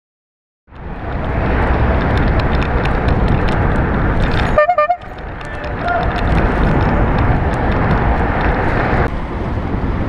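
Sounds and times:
bicycle road noise: 0.7s - 10.0s
wind noise: 0.7s - 10.0s
car horn toot: 4.5s - 5.1s.

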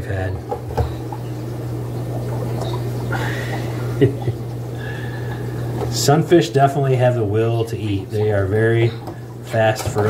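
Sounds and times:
aquarium pumps humming: 0.0s - 10.0s
bubbles crackling in water: 0.0s - 10.0s.

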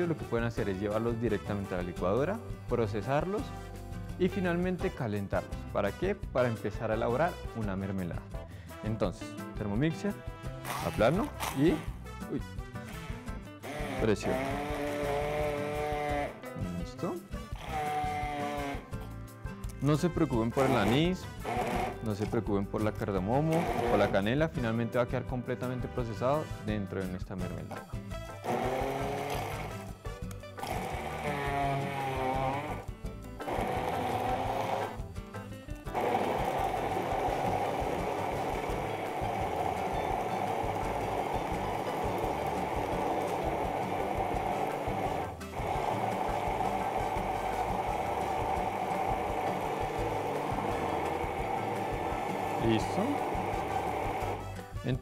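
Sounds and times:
immersion blender running: 10.6s - 12.0s, 13.6s - 16.5s, 17.5s - 19.0s, 20.5s - 22.3s, 23.3s - 24.3s, 28.3s - 30.0s, 30.6s - 35.1s, 35.8s - 54.7s.

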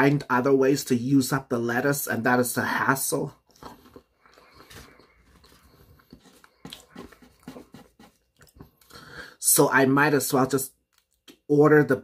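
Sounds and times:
person chewing with mouth smacks: 3.4s - 9.0s.

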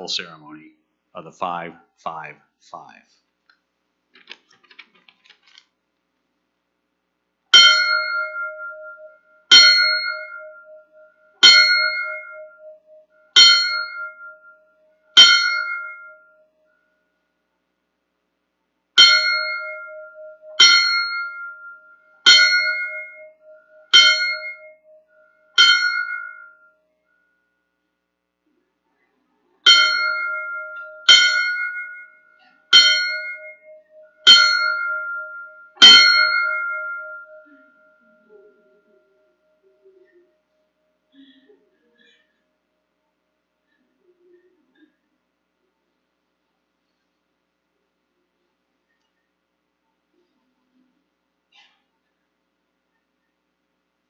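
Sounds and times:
fire bell tolling: 7.6s - 16.4s, 19.0s - 24.9s, 25.6s - 26.7s, 29.7s - 38.0s.

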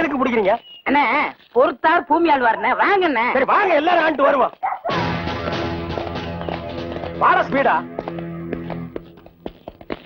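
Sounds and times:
background music: 4.9s - 9.4s.

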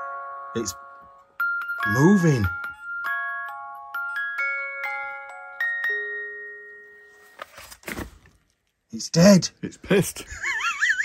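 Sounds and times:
music box chiming notes: 0.0s - 7.4s.

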